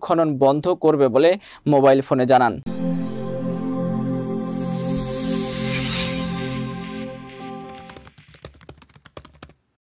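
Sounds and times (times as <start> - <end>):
computer keyboard typing: 7.6 - 9.6.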